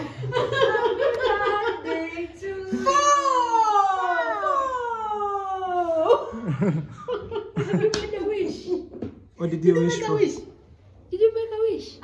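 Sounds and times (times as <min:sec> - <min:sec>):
people talking: 0:00.0 - 0:06.3, 0:07.6 - 0:08.9
people laughing: 0:00.0 - 0:09.0.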